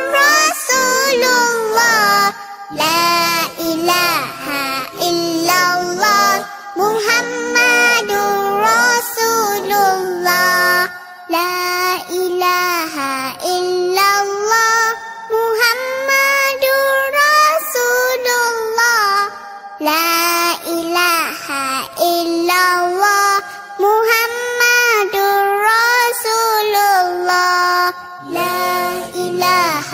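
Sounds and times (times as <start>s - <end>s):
child singing: 0.0s - 29.9s.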